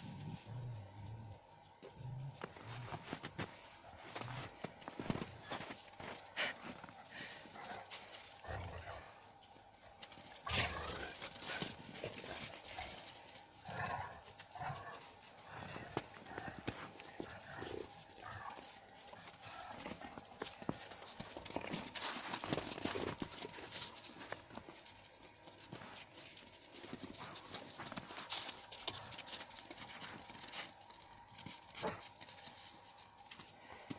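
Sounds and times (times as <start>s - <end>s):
paws scuffling on snow: 1.9s - 33.9s.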